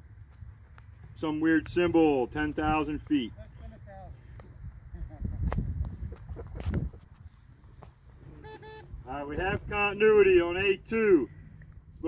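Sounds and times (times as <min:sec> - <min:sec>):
low wind rumble: 0:01.4 - 0:12.0
short electronic beeps: 0:08.4 - 0:08.9.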